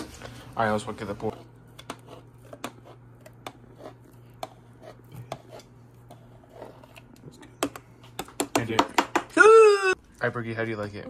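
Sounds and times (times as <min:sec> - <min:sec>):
steady low hum: 0:00.0 - 0:09.3.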